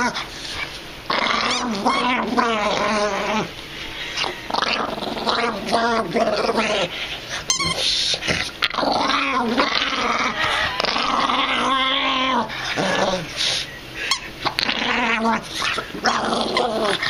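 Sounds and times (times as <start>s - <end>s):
dog growling: 0.0s - 17.0s.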